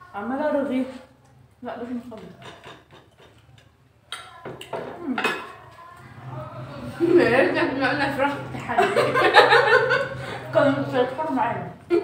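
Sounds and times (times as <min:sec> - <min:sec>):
cutlery clinking against plates: 0:02.2 - 0:05.7.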